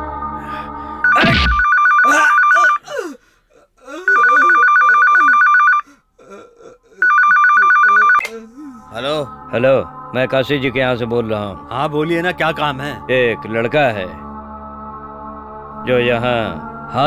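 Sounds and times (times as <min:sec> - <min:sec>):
two-tone telephone ringer: 0:01.6 - 0:02.5, 0:04.1 - 0:05.8, 0:07.0 - 0:08.2.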